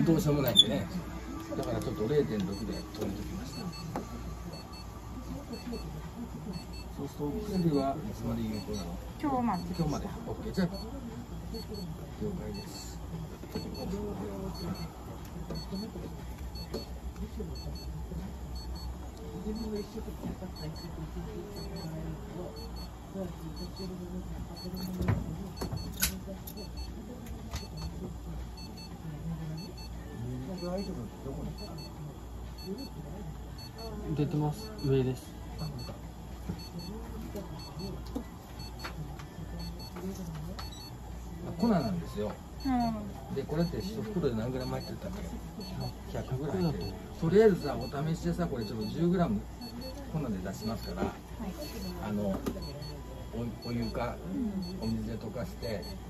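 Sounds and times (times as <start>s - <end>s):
electronic device beeping: 0.0s - 10.9s, 11.5s - 24.0s, 24.6s - 28.0s, 28.6s - 29.0s, 29.6s - 32.0s, 32.6s - 33.0s, 33.6s - 36.0s, 36.6s - 39.0s, 39.6s - 56.0s
steady low hum: 0.0s - 56.0s.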